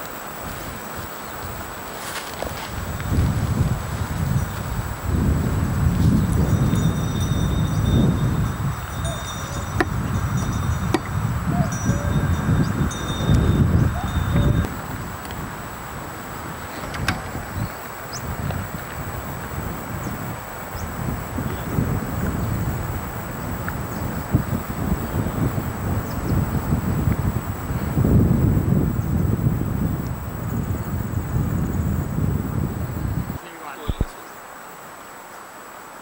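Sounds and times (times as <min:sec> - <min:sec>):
wind buffeting microphone: 0:02.4 - 0:34.2
thin high-pitched whine: 0:04.2 - 0:34.3.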